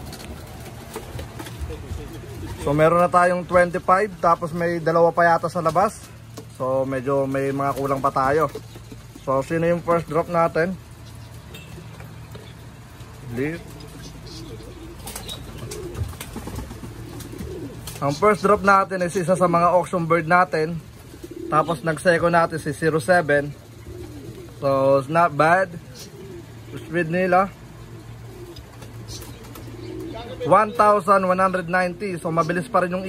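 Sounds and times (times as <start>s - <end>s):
pigeons cooing: 0.0s - 33.0s.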